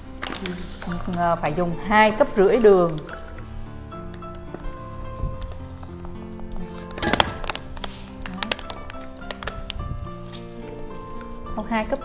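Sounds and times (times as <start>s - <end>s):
background music: 0.0s - 12.0s
sugar pouring hiss: 7.7s - 8.6s.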